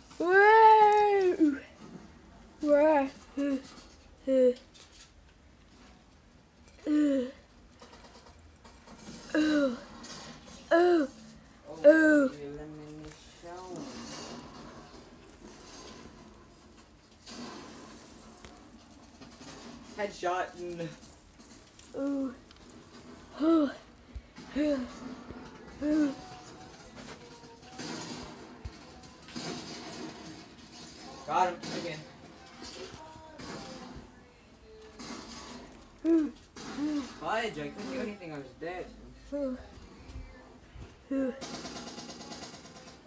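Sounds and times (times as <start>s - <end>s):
plastic branches rustling: 0.0s - 6.0s, 7.7s - 34.2s.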